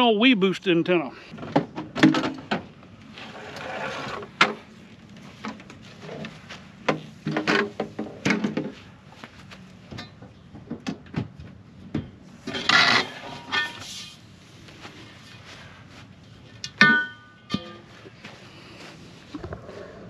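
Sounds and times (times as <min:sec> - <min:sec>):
loud clattering scrape: 0:03.2 - 0:04.6, 0:12.5 - 0:14.2
pipes knocking and scraping: 0:05.4 - 0:08.9, 0:16.5 - 0:18.4.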